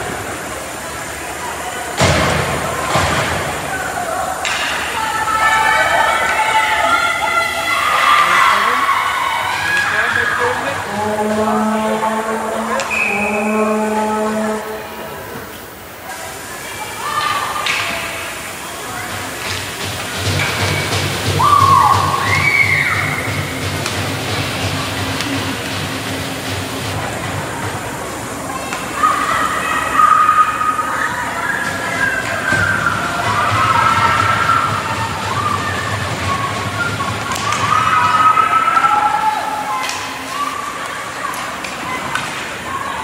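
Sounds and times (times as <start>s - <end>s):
voices shouting in echoing hall: 0.0s - 43.0s.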